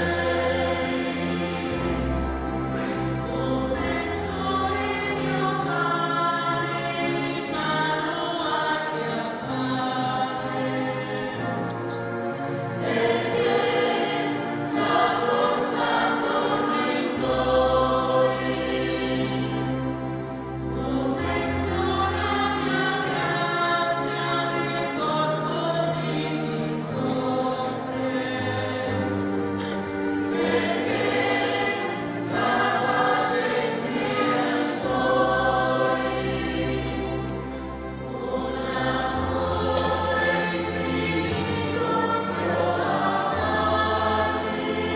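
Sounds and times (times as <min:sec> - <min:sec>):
choir singing long held notes: 0:00.0 - 0:44.9.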